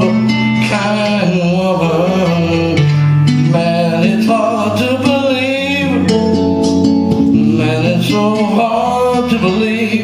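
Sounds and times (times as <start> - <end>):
man singing wordless note: 0.0 - 6.2, 7.4 - 10.0
acoustic guitar: 0.0 - 10.0.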